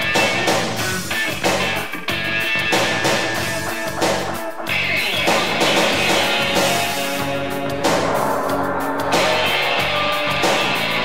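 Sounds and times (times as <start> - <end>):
electric guitar: 0.0 - 11.0
steady drum beat: 0.0 - 11.0.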